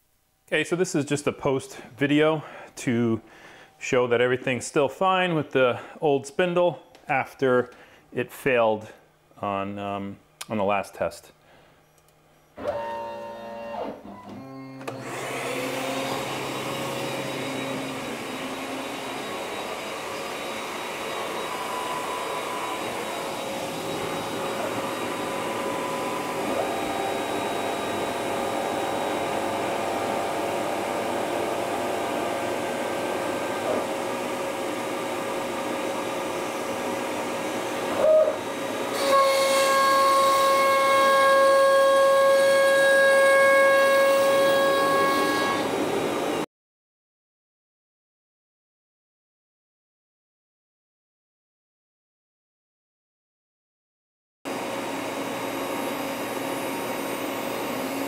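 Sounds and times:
router spindle whine: 12.5 - 46.4, 54.5 - 58.0.

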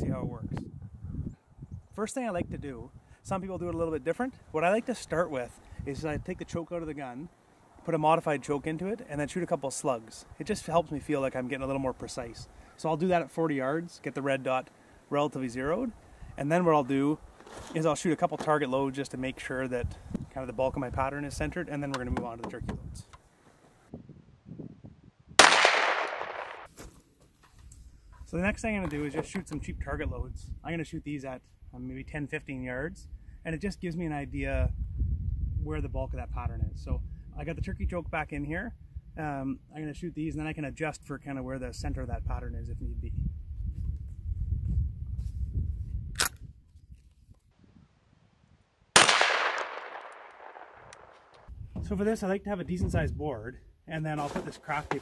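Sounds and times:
faint handling sounds: 17.2 - 18.7, 54.0 - 55.0
shotgun blast: 25.4 - 26.7, 49.0 - 51.3
gun loading click: 46.2 - 46.4.

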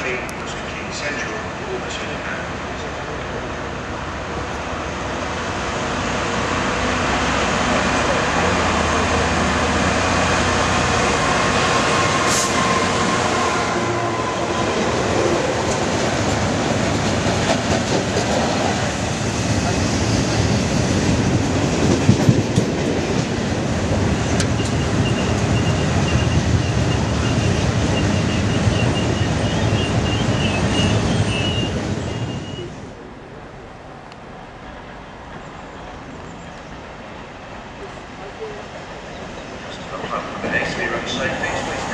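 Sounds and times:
diesel freight train passing: 0.0 - 41.9
high wheel squeal: 24.6 - 32.7.

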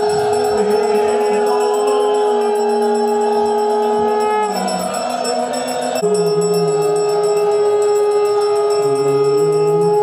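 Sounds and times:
long held drone note: 0.0 - 10.0
lower line shifting in pitch: 0.0 - 10.0
quick jingling rhythm: 0.0 - 10.0.

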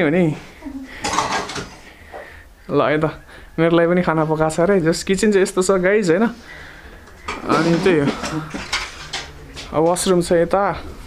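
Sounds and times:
kitchenware clatter: 1.0 - 1.8, 7.3 - 10.1.

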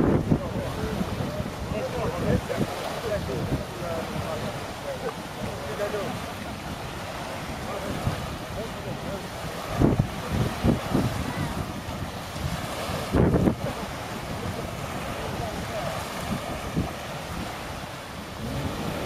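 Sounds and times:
small waves washing on shore: 0.0 - 19.0
wind buffeting microphone: 0.0 - 19.0.

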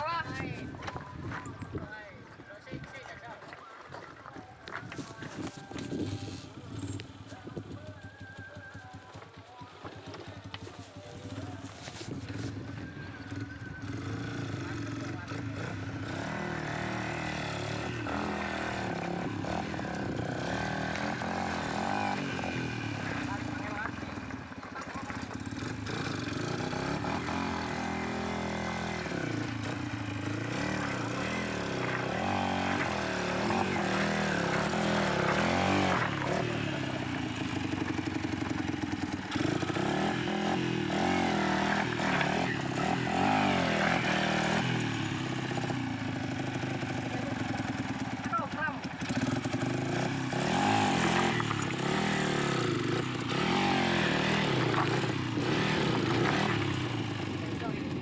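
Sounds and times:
motorcycle engine running: 0.0 - 3.0, 4.0 - 58.0
people's voices: 0.0 - 15.8, 30.4 - 39.8
bike crawling over loose rocks: 2.7 - 6.1.

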